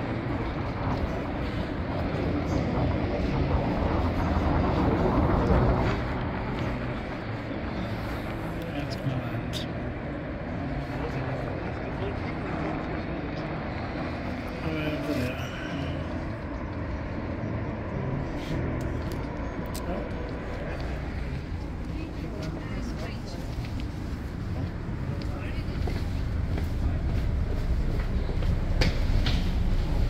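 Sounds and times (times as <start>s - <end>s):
road traffic rumble: 0.0s - 30.0s
wind: 0.0s - 30.0s
people talking: 8.5s - 9.8s, 10.8s - 16.2s, 21.8s - 23.8s, 24.6s - 26.2s.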